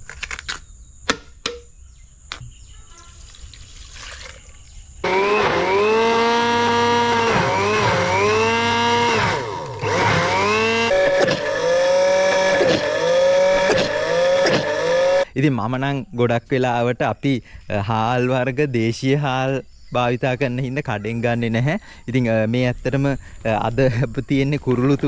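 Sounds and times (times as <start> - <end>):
electric blender running: 5.0 - 15.3.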